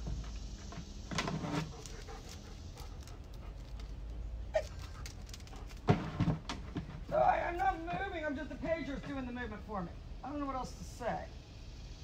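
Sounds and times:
dog whining: 4.5 - 5.7.

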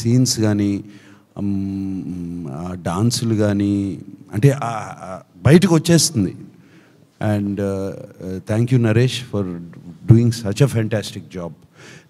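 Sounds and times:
man speaking: 0.0 - 6.5, 7.2 - 11.6.

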